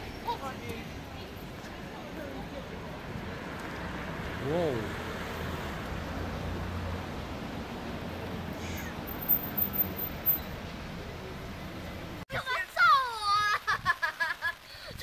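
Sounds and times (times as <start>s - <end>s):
traffic noise: 0.0s - 15.0s
car driving past: 3.3s - 9.3s.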